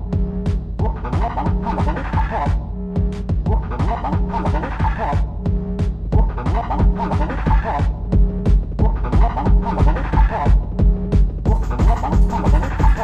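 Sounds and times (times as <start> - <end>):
driving kick drum: 0.0 - 13.0.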